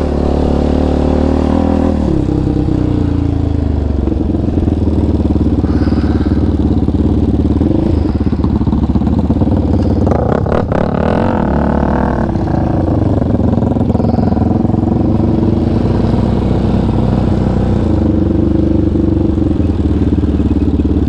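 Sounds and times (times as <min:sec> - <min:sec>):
atv engine under throttle: 0:00.0 - 0:21.0.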